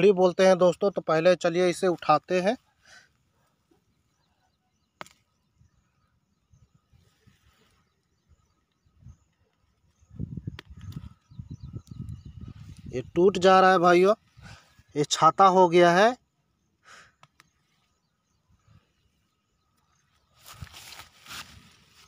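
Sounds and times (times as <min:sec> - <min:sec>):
rustling in thick grass: 0:20.2 - 0:22.0.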